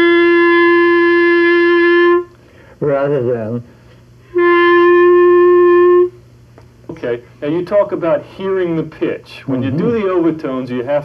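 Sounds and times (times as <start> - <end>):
clarinet long held note: 0.0 - 2.3, 4.3 - 6.2.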